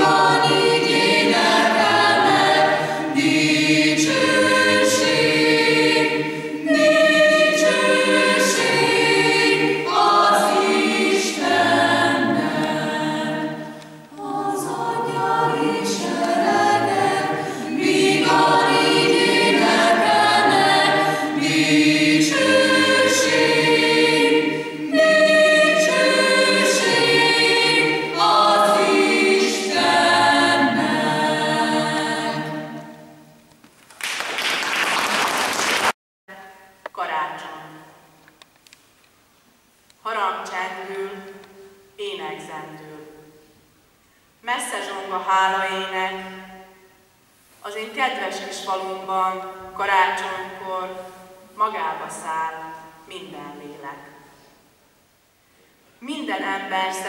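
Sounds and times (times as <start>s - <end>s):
mixed choir singing: 0.0s - 33.5s.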